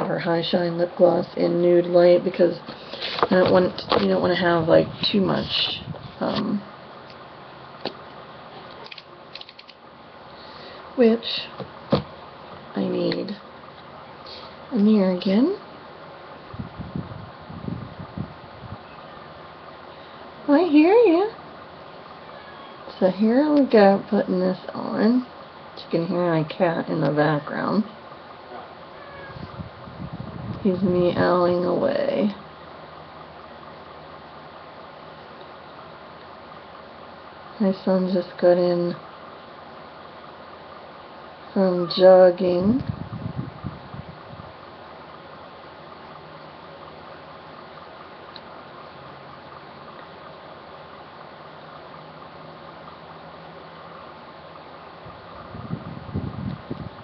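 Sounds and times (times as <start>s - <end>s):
steady background hiss: 0.0s - 57.0s.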